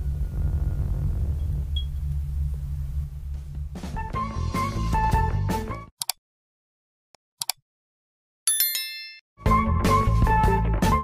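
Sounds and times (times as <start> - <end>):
low synthesized drone: 0.0 - 3.9.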